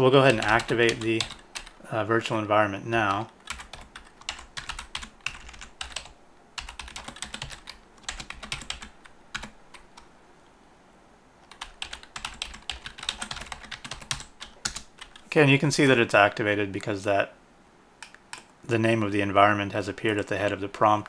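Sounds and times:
computer keyboard typing: 0.2 - 1.8, 3.0 - 10.1, 11.4 - 15.3.

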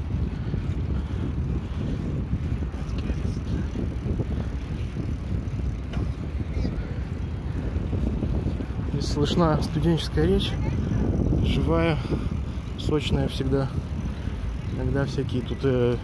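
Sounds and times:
faint clicks from bumps: 0.0 - 6.7
bicycle tyres rumbling over tiles: 0.0 - 16.0
wind buffeting microphone: 0.0 - 16.0.

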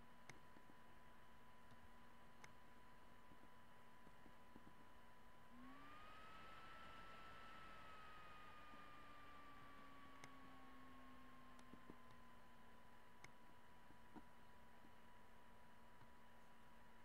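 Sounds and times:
faint electronic whine: 0.0 - 17.0
faint clicks: 9.6 - 10.8, 11.5 - 12.3.

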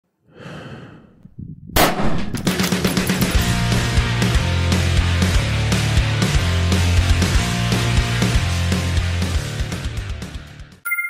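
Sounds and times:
soft breathy whoosh: 0.3 - 1.6.

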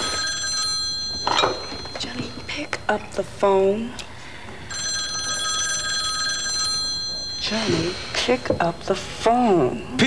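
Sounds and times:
telephone bell ringing: 0.0 - 2.9, 4.7 - 8.2.

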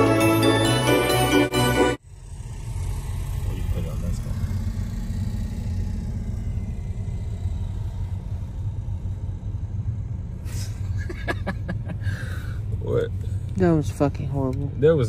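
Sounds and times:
car engine and tyres rumbling: 0.0 - 15.0.

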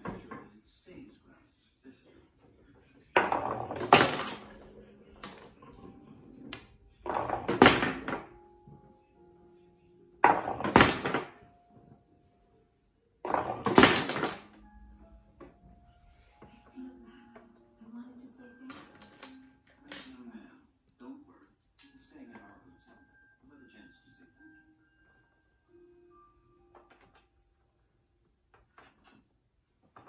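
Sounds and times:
marble clattering into pins: 3.2 - 5.6, 6.5 - 8.3, 10.2 - 11.4, 13.2 - 14.6
marble rolling on wooden lane: 6.6 - 8.3, 13.2 - 14.5.

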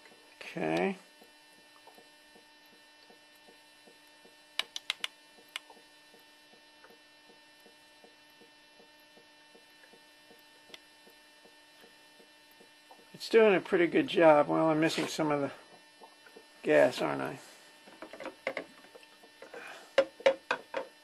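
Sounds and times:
faint electrical hum: 0.0 - 21.0
sharp clicks: 4.6 - 5.7.

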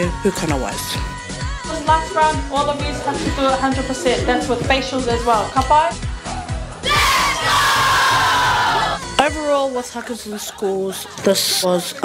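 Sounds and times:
children shouting and cheering: 6.8 - 9.0.

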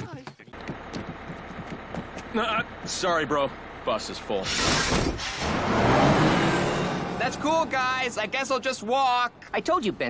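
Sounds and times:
bus engine speeding up: 5.0 - 9.4.

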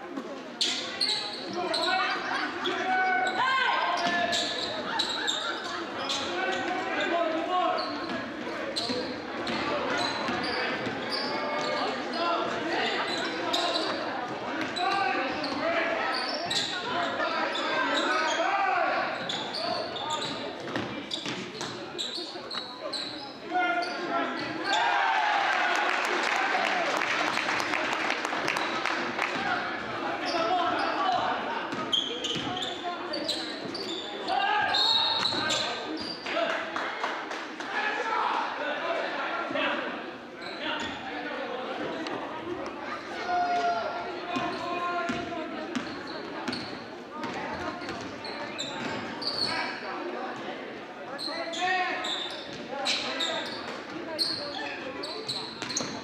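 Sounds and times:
players and spectators shouting: 1.6 - 5.0, 23.6 - 27.0
crowd cheering and clapping: 25.0 - 29.4.

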